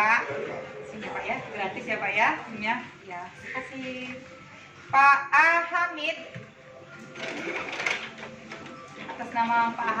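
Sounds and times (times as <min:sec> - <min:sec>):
office printer whirring: 0:07.0 - 0:09.2.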